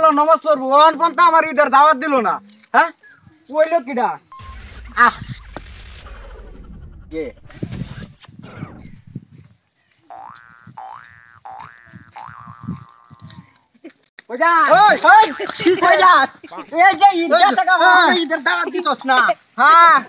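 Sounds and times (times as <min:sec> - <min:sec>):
cartoon boing sound effect: 0:10.1 - 0:13.3.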